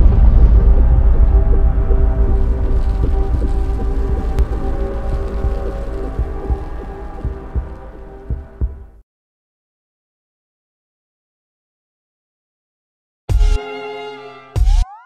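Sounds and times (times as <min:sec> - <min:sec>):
big boom tail: 0:00.0 - 0:09.0
deep thuds: 0:00.0 - 0:09.0
low drone with held tones: 0:00.0 - 0:09.0.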